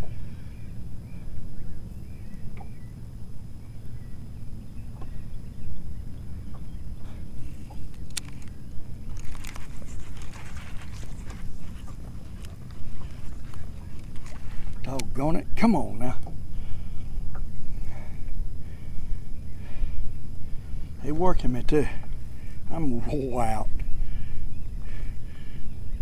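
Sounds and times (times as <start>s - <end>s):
steady low rumble: 0.0s - 26.0s
sharp click: 7.8s - 9.6s
fishing reel clicking and rattling: 7.9s - 8.5s, 9.1s - 14.8s.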